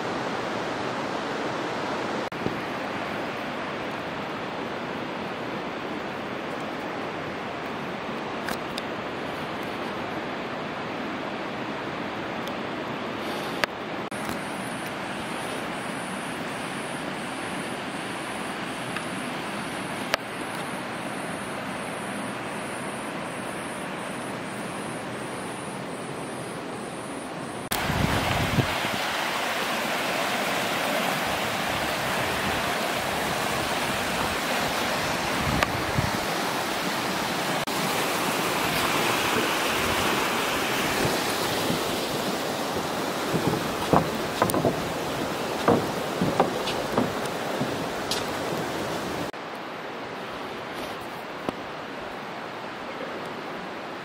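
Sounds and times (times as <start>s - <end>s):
river water rushing over rapids: 0.0s - 54.0s
light knocks: 43.3s - 45.0s, 45.6s - 48.6s.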